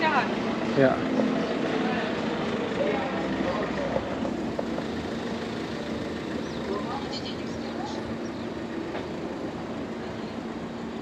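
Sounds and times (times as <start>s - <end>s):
faint voices: 0.0s - 8.7s
street noise low hum: 0.0s - 11.0s.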